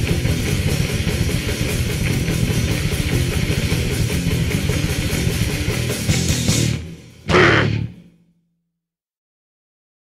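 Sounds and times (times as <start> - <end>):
fast dense drumming: 0.0 - 7.9
distorted guitars: 0.0 - 8.2.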